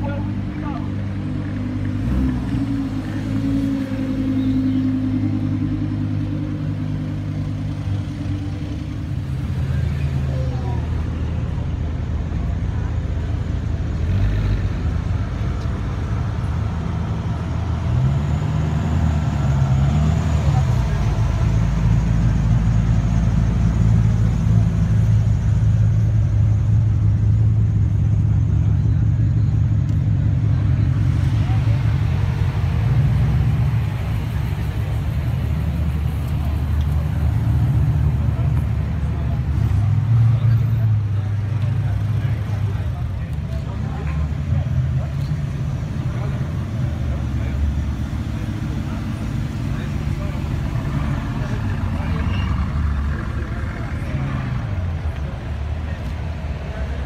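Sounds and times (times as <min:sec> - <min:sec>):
supercar engines at low speed: 0:00.0 - 0:57.0.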